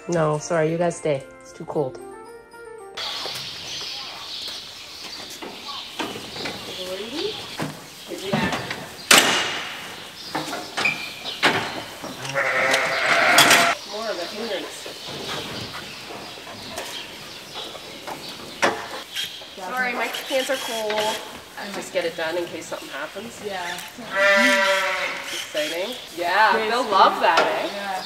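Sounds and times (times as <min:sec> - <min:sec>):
sheep bleating: 0:12.2 - 0:13.8, 0:23.9 - 0:25.6.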